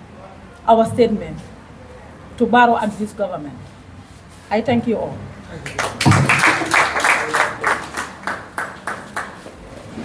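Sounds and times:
audience clapping: 5.6 - 9.6.

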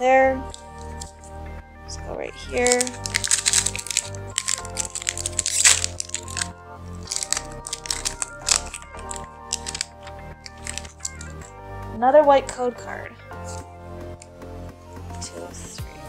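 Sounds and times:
background music: 0.0 - 16.0
foil wrapper crinkling: 0.4 - 1.3, 2.4 - 11.5.

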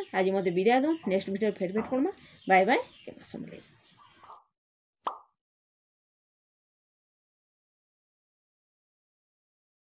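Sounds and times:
cartoon pop sound effect: 5.0 - 5.4.

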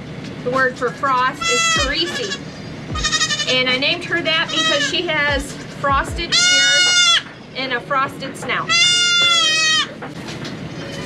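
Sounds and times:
goat kid bleating: 1.4 - 3.7, 4.4 - 5.2, 6.3 - 7.3, 8.7 - 9.9.

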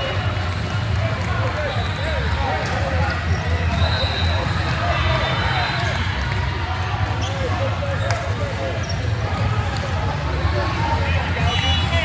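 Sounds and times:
background chatter: 0.0 - 12.0
sneakers squeaking on court: 7.2 - 9.8.

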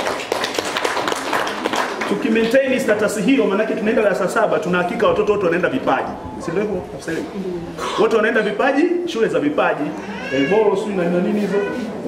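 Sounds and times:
audience applauding: 0.0 - 2.4.

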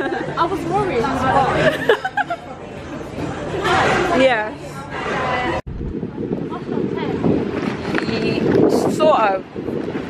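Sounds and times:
dining room murmur: 0.0 - 5.7.

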